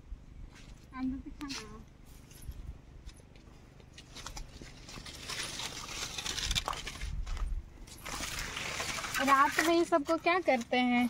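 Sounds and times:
leaves and twigs rustling: 3.8s - 11.0s.

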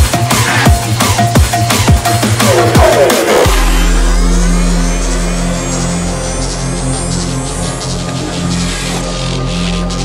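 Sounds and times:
deep bass note: 2.4s - 9.2s.

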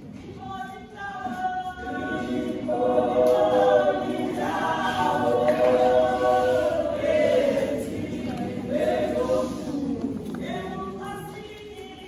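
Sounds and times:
women's choir singing gospel: 0.0s - 12.0s.

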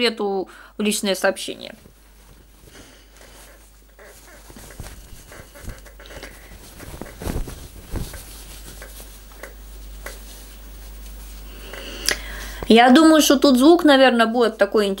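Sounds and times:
cloth rustling and flapping: 1.5s - 11.7s.

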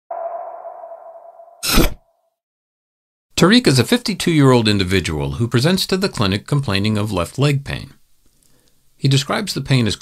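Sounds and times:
steady tone: 0.1s - 2.2s.

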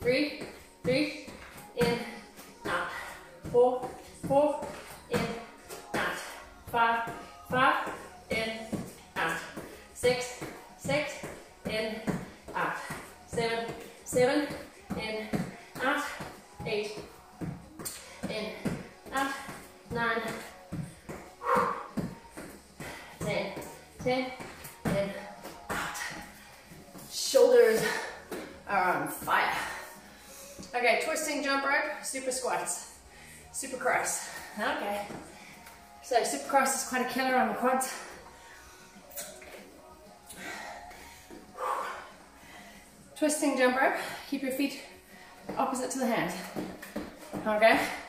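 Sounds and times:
woman breathing hard: 20.6s - 24.0s, 40.0s - 43.2s.

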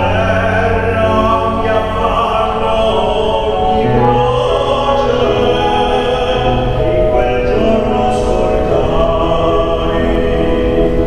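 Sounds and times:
grand piano: 0.0s - 11.0s
man singing operatically: 0.0s - 11.0s.

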